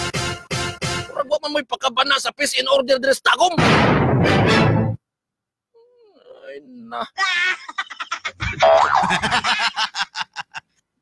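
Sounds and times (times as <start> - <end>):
low thump: 3.6 - 4.6.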